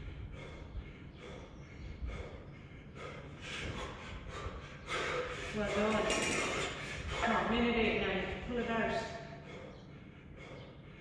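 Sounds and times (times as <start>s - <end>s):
man breathing hard: 0.0s - 7.5s, 8.3s - 11.0s.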